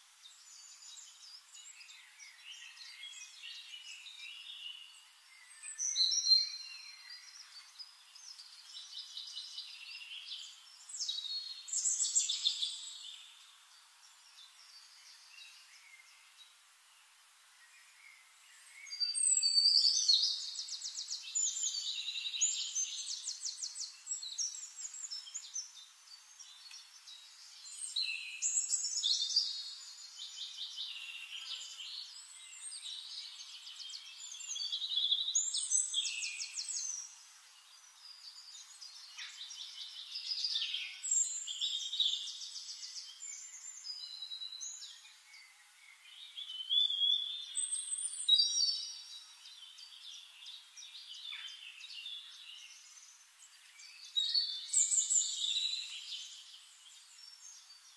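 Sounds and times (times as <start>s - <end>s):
small birds trilling and chirping: 0.0s - 57.9s.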